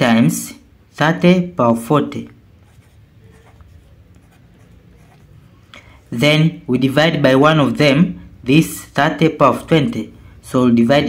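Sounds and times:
low room hum: 0:00.0 - 0:11.0
pen scratching on paper: 0:02.6 - 0:05.5.

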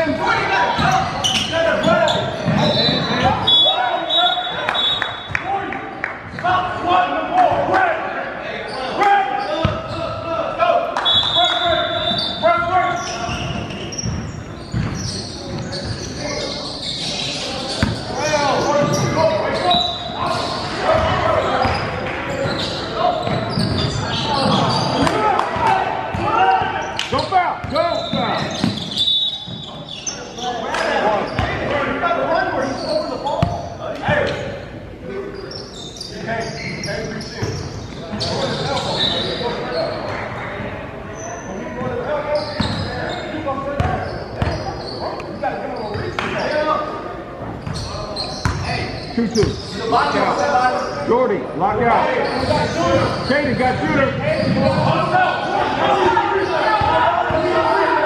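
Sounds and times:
echoing voices: 0:00.0 - 0:58.0
basketball bouncing on hardwood floor: 0:14.1 - 0:15.0.

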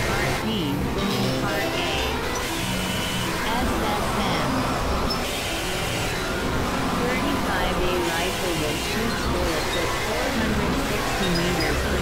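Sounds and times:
experimental noise drones: 0:00.0 - 0:12.0.

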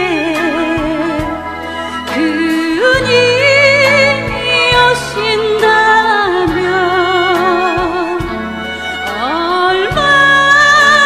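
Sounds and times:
live band playing: 0:00.0 - 0:11.0
woman singing with vibrato: 0:00.0 - 0:11.0.

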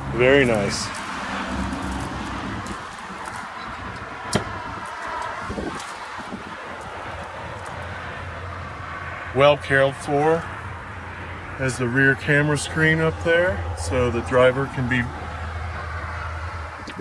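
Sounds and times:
outdoor background noise: 0:00.0 - 0:17.0.

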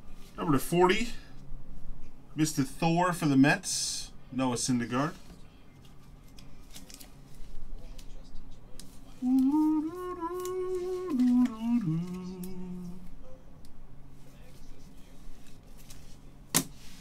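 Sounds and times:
man humming a tune: 0:09.1 - 0:13.4.

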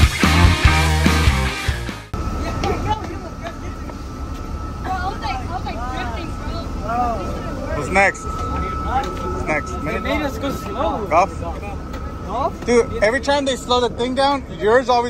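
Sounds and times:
rock music: 0:00.0 - 0:02.2
high-pitched whine: 0:00.0 - 0:15.0
boys talking: 0:02.3 - 0:15.0.

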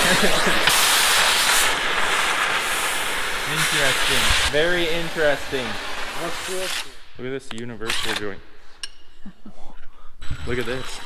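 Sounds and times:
arc welding sizzling hiss: 0:00.0 - 0:07.2.

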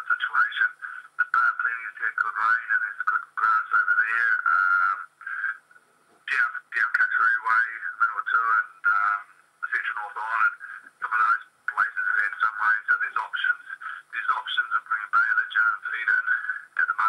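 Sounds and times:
radio interview speech through speaker: 0:00.0 - 0:17.0.

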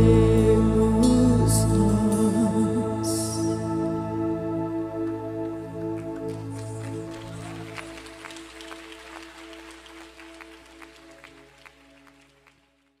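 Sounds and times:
sustained keyboard chord: 0:00.0 - 0:07.4.

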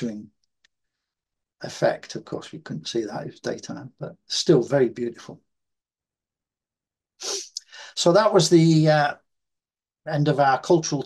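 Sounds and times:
man speaking: 0:00.0 - 0:00.3, 0:01.6 - 0:05.4, 0:07.2 - 0:09.2, 0:10.1 - 0:11.0
man sniffing sharply: 0:07.2 - 0:07.9.

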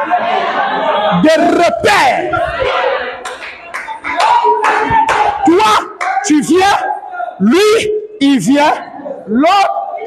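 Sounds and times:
congregation clapping: 0:02.6 - 0:06.6.

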